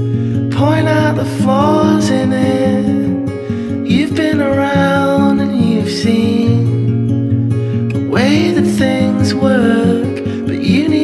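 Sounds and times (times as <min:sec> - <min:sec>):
song with guitar: 0:00.0 - 0:11.0.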